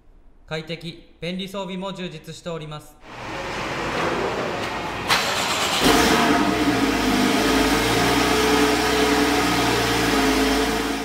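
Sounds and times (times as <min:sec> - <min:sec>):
car engine starting and idling: 0:03.0 - 0:11.0.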